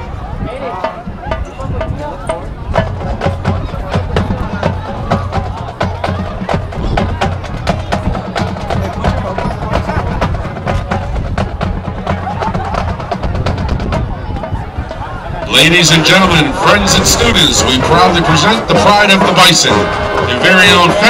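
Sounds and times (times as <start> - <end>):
bass drum beat: 0.8 - 21.0.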